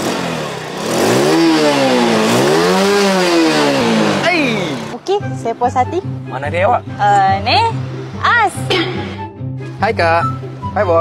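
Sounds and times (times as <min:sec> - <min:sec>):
motorcycle engine revving: 0:00.0 - 0:05.1.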